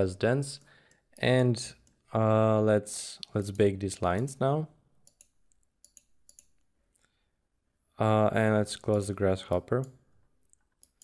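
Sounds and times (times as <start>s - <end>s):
computer mouse clicks: 5.0s - 7.1s, 8.8s - 11.0s.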